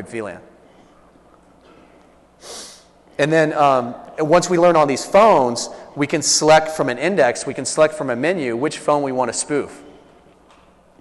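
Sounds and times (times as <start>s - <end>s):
low room noise: 0.0s - 11.0s.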